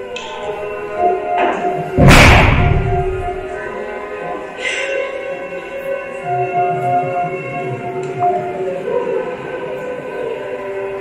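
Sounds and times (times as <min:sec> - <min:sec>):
slow droning music: 0:00.0 - 0:11.0.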